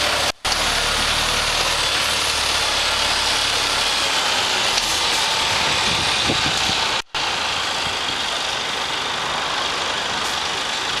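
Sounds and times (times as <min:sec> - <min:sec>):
truck diesel engine running: 0:00.0 - 0:11.0.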